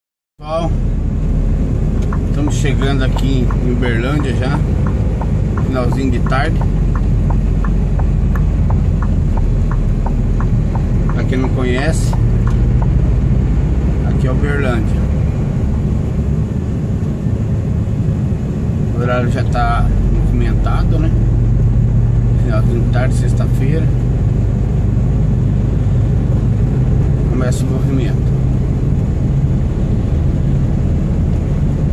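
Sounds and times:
truck engine and road rumble: 0.4s - 31.9s.

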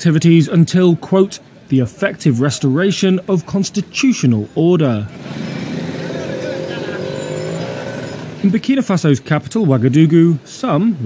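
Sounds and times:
people's voices: 0.0s - 11.0s
motorbikes: 4.2s - 8.7s
bus engine passing: 5.1s - 8.6s.

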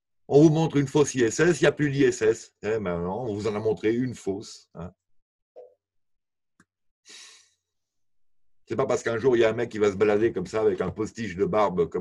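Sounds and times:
man breathing out: 7.1s - 7.6s.

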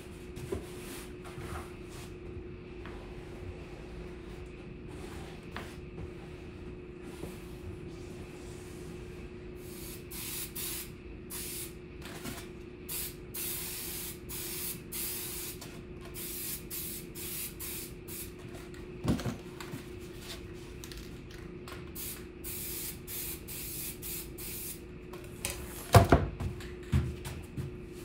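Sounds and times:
aerosol spray hissing: 9.6s - 11.7s, 22.0s - 24.8s.

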